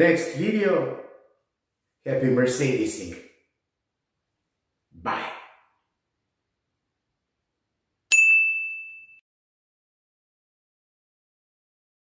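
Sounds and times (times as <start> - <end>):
bell-like ding: 8.1 - 9.2.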